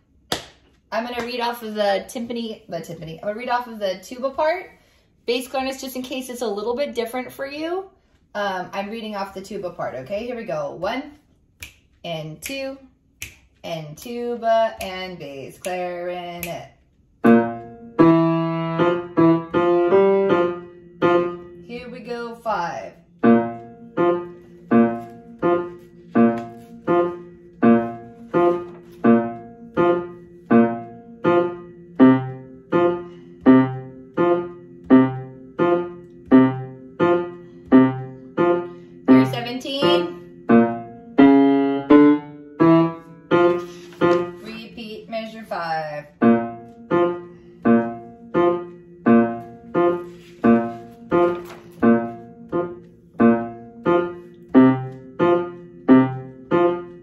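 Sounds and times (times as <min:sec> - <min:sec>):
piano bass line repeated notes: 0:17.2 - 0:57.0
paper rustling page turn: 0:24.4 - 0:26.9, 0:28.1 - 0:29.1, 0:43.5 - 0:44.5, 0:50.0 - 0:52.2.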